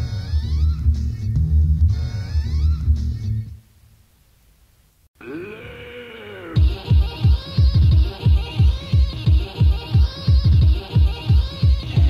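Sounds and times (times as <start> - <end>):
electronic music with pulsing bass: 6.6 - 12.0.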